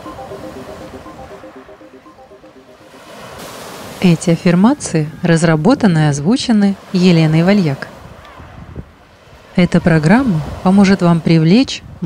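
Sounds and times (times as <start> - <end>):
soft music of short notes: 0.0 - 4.0
waves breaking: 0.0 - 12.0.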